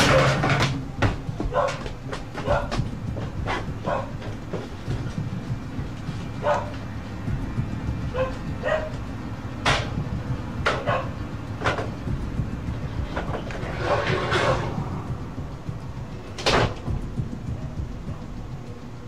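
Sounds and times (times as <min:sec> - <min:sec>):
sharp knocks and clicks: 0:00.0 - 0:14.9, 0:15.7 - 0:18.2
steady low rumble: 0:00.0 - 0:19.0.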